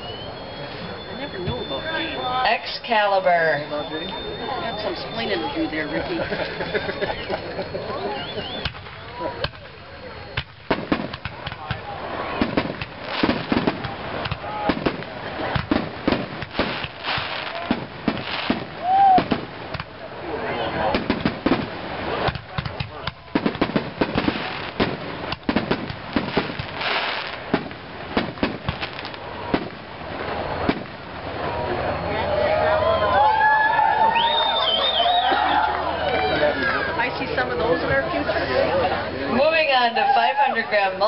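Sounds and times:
firework bangs and crackle: 0:00.3 - 0:32.0.

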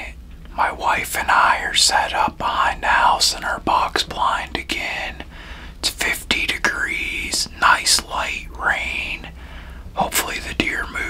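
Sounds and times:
man whispering: 0:00.0 - 0:11.0.

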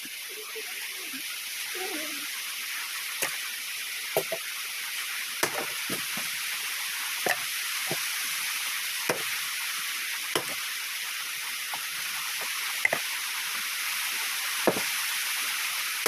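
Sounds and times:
steady background hiss: 0:00.0 - 0:16.0
axe chopping log: 0:05.4 - 0:06.0, 0:09.1 - 0:09.3, 0:10.4 - 0:10.6, 0:14.7 - 0:14.9.

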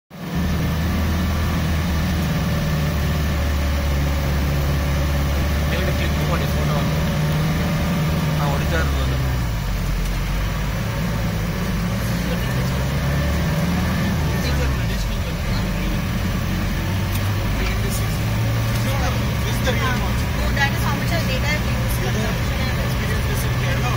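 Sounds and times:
car engine low hum: 0:00.1 - 0:23.9.

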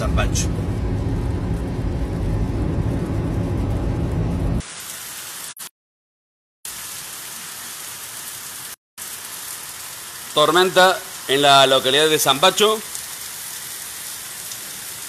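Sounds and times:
car driving at speed: 0:00.0 - 0:04.6
heavy rain on street: 0:00.0 - 0:05.6, 0:06.7 - 0:15.0.

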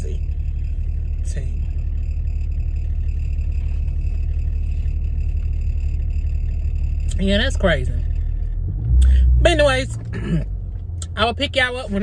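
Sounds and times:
faint high whine: 0:00.0 - 0:08.5
car engine rumbling: 0:00.0 - 0:12.0.

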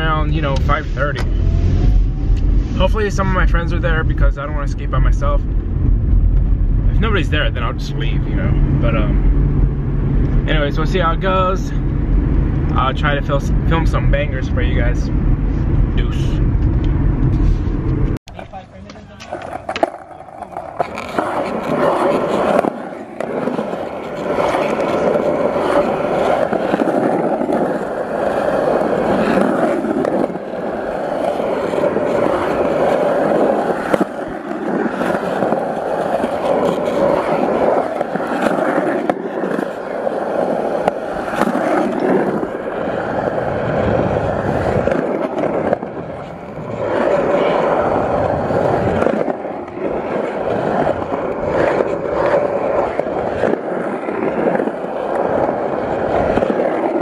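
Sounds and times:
skateboard wheels rolling on concrete: 0:00.0 - 0:57.0.

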